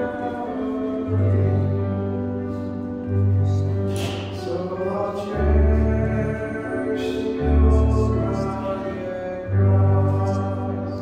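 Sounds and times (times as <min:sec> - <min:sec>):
keyboard playing piano chords: 0:00.0 - 0:11.0
man singing slow worship song: 0:00.0 - 0:11.0.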